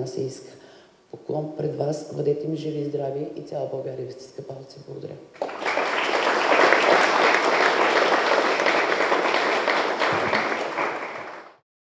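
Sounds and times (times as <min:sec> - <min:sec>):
audience applauding: 0:05.4 - 0:11.6.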